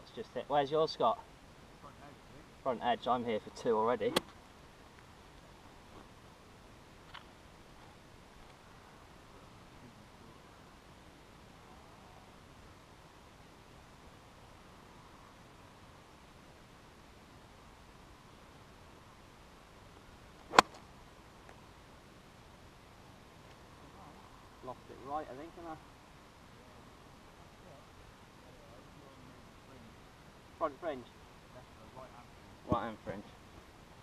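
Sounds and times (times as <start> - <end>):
faint outdoor background: 0.0 - 34.0
golf club striking ball: 20.5 - 20.8.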